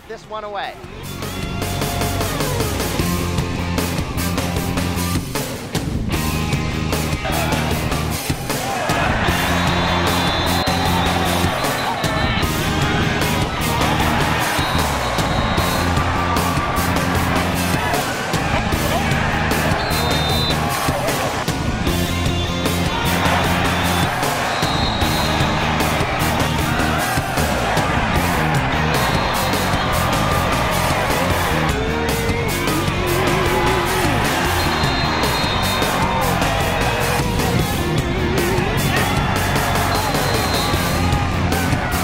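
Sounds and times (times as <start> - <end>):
music with beat and bass line: 0.9 - 42.0.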